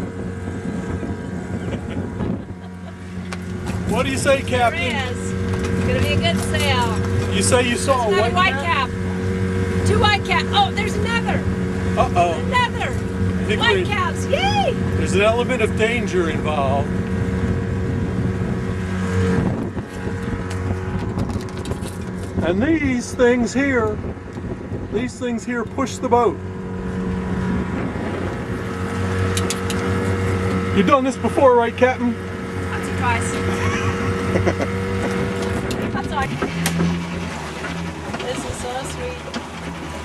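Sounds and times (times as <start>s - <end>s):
boat motor humming: 0.0s - 40.0s
low drone: 0.0s - 40.0s
water rushing: 0.0s - 40.0s
wind buffeting microphone: 0.0s - 40.0s.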